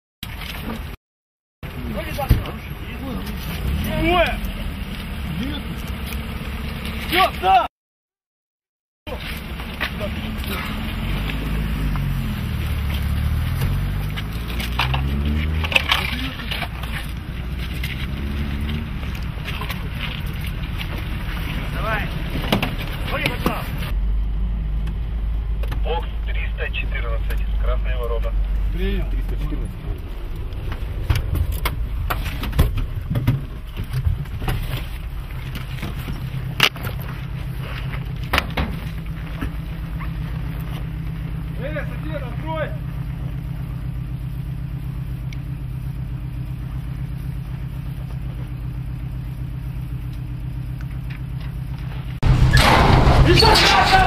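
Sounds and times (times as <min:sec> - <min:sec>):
vehicle engine droning: 0:01.6 - 0:07.7, 0:09.1 - 0:54.0
indistinct voices: 0:52.6 - 0:54.0.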